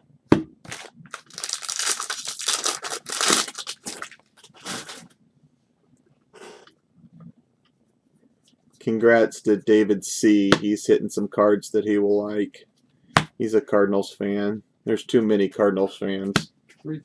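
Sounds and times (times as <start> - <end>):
foil wrapper tearing and crinkling: 0.7 - 5.1.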